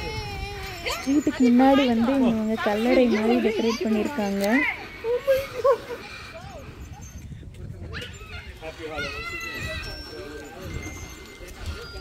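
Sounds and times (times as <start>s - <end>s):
high-pitched wavering calls: 8.0s - 12.0s.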